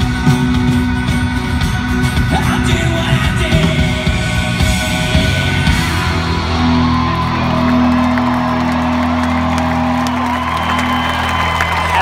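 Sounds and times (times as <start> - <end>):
rock band sustained guitar chord: 0.0 - 12.0
crowd whooping and cheering: 5.6 - 12.0.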